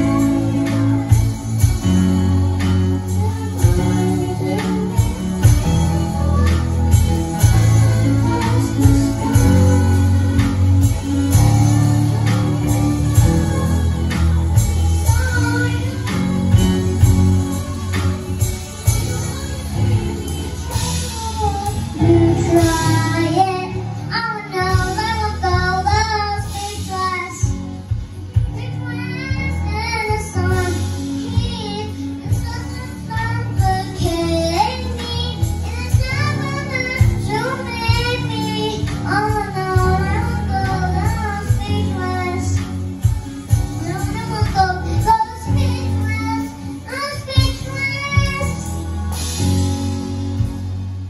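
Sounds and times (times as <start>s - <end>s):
girl singing into microphone: 0.0s - 50.5s
keyboard: 0.0s - 51.0s.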